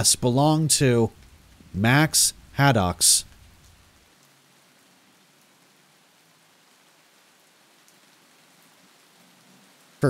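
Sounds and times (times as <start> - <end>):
rain hiss: 0.0 - 10.0.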